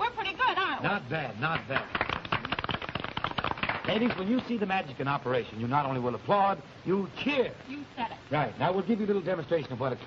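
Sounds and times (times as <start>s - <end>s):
people applauding: 1.4s - 4.6s.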